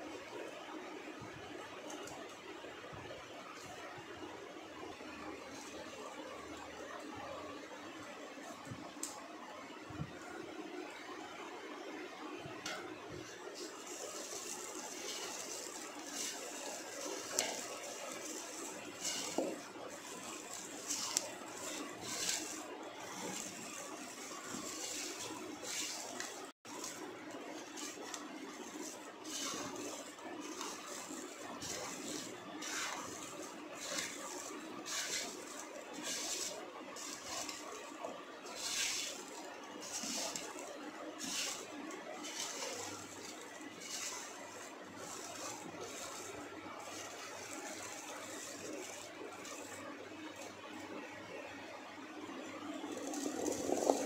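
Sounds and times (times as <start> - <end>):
hand mixing mango pieces in bowl: 12.6 - 51.0, 51.6 - 54.0.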